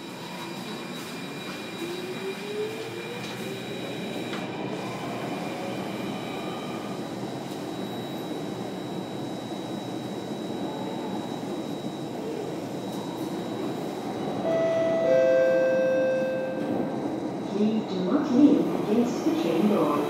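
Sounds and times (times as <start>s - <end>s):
wheels rumbling on rail: 9.9s - 20.0s
thin high tone: 14.4s - 16.9s.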